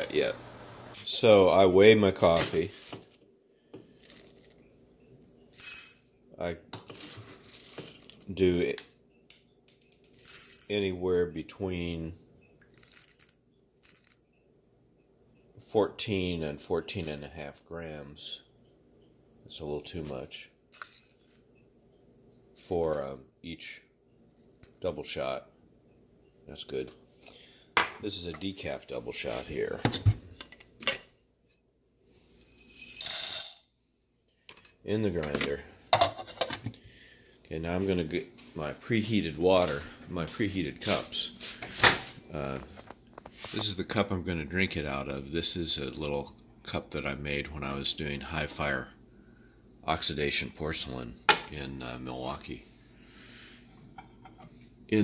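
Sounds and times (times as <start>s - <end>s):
low steady hum: 0.0s - 55.0s
coffee beans rattling: 2.3s - 3.2s, 3.8s - 4.7s, 20.7s - 21.4s, 32.4s - 33.6s.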